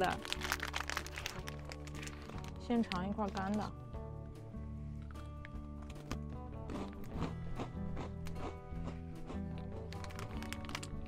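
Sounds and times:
background music: 0.0s - 11.0s
crunchy biscuit being chewed: 0.2s - 2.3s, 6.0s - 11.0s.

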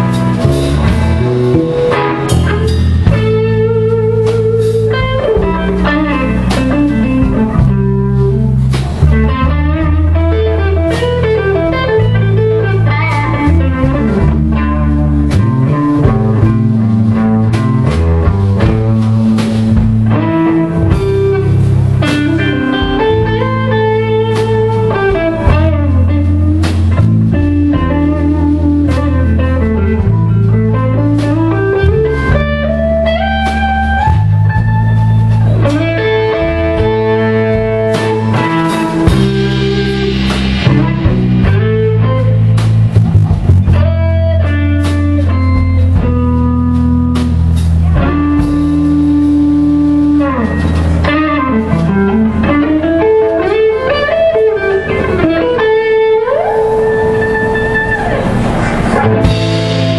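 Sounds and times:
drum hits: 0.0s - 55.7s, 57.6s - 59.9s
bass notes: 0.0s - 59.9s
electric guitar solo: 0.0s - 59.9s.

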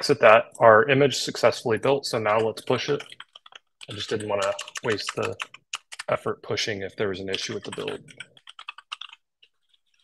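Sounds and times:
typing on computer keyboard: 2.3s - 6.2s, 7.3s - 10.0s.

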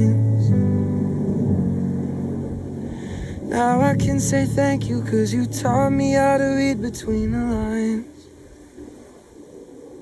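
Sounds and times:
person singing: 0.0s - 0.8s, 3.2s - 8.3s
keyboard holding low chord: 0.0s - 8.6s.

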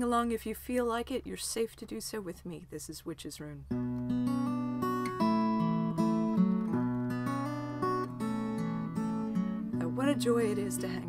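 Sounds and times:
acoustic guitar strumming chords: 3.7s - 11.0s.

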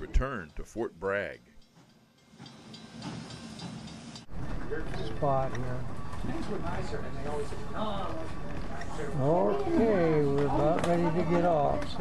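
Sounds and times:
people talking: 0.0s - 1.4s, 4.7s - 12.0s
faint talk: 4.8s - 12.0s.

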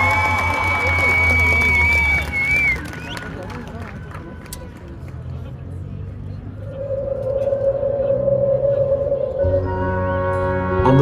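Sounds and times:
eerie sustained tone: 6.4s - 11.0s
marching band low chord: 6.7s - 11.0s.

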